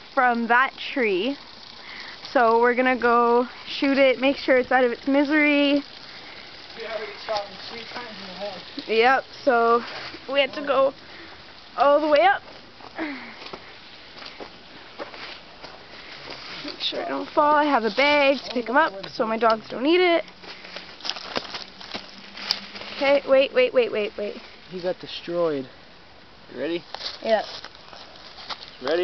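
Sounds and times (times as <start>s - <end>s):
crackly background noise: 0.0s - 29.0s
footsteps crunching on dirt: 12.4s - 19.7s, 20.3s - 23.3s, 26.8s - 29.0s.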